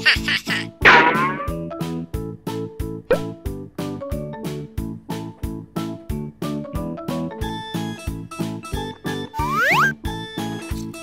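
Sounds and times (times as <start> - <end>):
bouncy children's music: 0.0 - 11.0
squeaky cartoon sound effect: 9.3 - 10.0.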